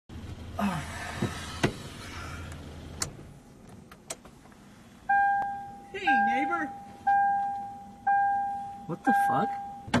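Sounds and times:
low engine hum: 0.1s - 4.0s
car warning chime: 5.1s - 10.0s.

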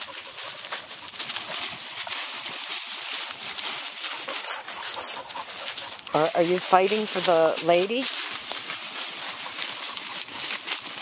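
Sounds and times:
dry leaves rustling and crackling: 0.0s - 11.0s.

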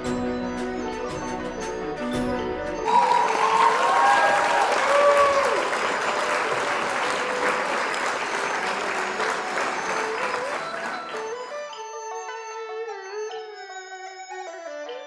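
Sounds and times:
music: 0.0s - 15.0s
audience applause: 2.8s - 11.6s
audience calls: 2.8s - 11.6s.

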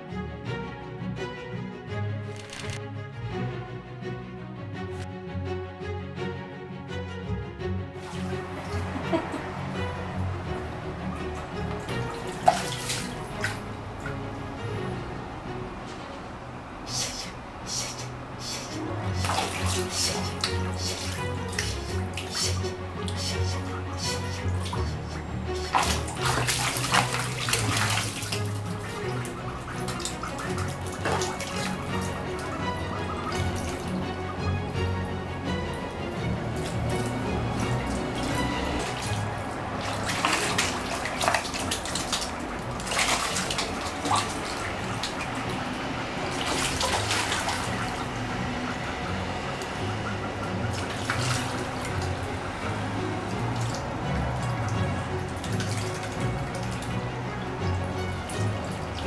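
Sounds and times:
background music: 0.0s - 59.0s
water splashing in plastic basins: 8.0s - 59.0s.

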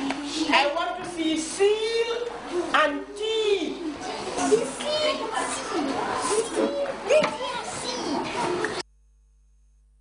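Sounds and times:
children talking and calling out: 0.0s - 8.8s.

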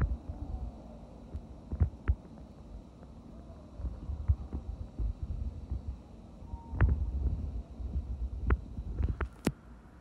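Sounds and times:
low thumps and rumble: 3.8s - 6.0s, 6.8s - 9.3s.

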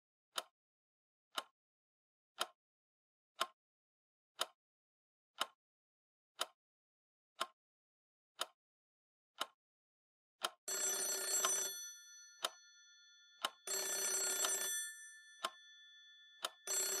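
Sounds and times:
clock ticking: 3.4s - 3.6s, 5.4s - 5.6s, 10.4s - 17.0s
telephone bell ringing: 10.7s - 17.0s.

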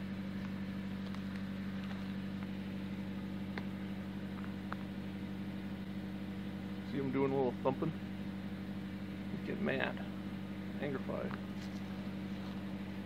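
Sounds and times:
engine idling: 0.0s - 13.0s.

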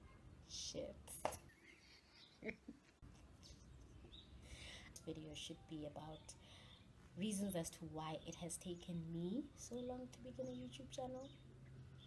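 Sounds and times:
woman laughing quietly: 1.5s - 4.8s.

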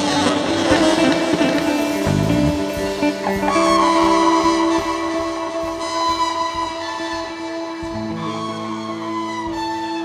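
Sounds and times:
irregular drum hits: 0.0s - 8.0s
electric guitar: 0.0s - 10.0s
saxophone sustained note: 0.0s - 10.0s.

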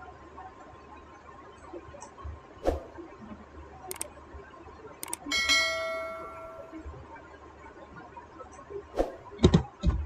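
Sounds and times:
mouse click: 3.9s - 4.1s, 5.0s - 5.2s
notification bell ding: 5.3s - 6.8s.

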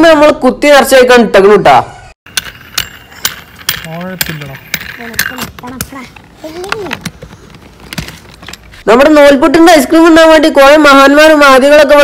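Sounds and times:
sharp metallic clicks: 2.3s - 8.8s.

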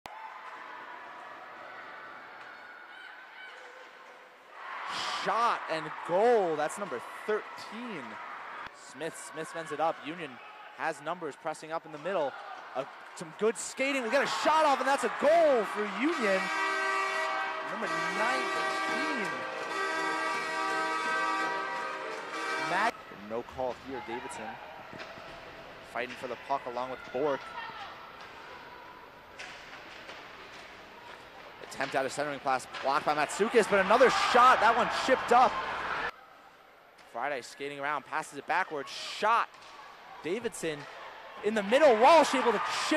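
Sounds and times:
crowd noise: 0.1s - 42.9s
skates and sticks on ice: 29.4s - 34.0s.

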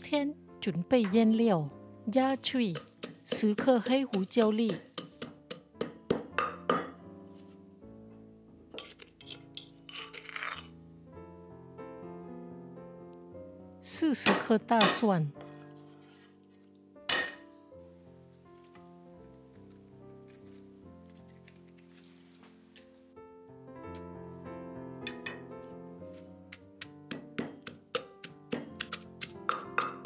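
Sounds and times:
background music: 0.0s - 30.0s
pestle pounding in mortar: 2.3s - 7.0s, 26.5s - 30.0s.

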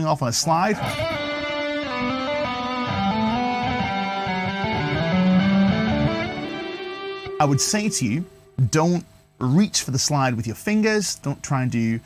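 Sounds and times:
electric guitar legato line: 0.6s - 8.8s.

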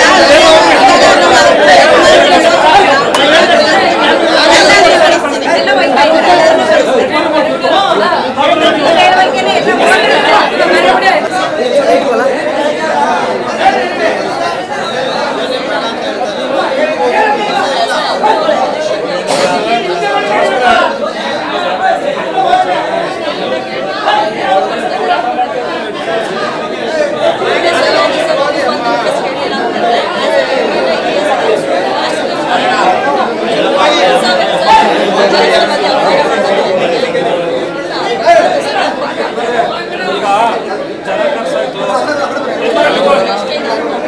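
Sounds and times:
overlapping conversation: 0.0s - 44.0s.

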